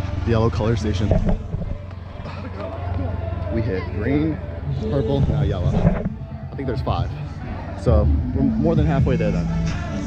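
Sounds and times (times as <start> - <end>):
low microphone rumble: 0.0 - 3.4, 4.4 - 9.1
background music: 0.0 - 10.0
indistinct voices: 0.0 - 10.0.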